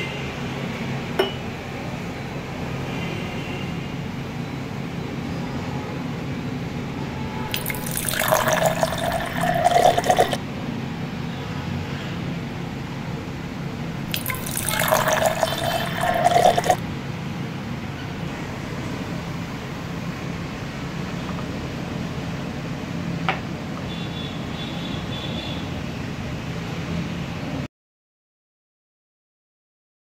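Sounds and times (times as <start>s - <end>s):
juice pouring into a glass: 7.5s - 10.4s, 14.0s - 16.8s.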